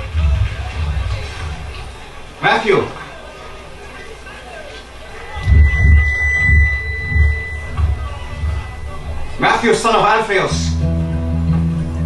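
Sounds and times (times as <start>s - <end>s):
low deep thuds: 0.0s - 2.3s, 5.4s - 9.8s
steady high-pitched tone: 5.1s - 10.8s.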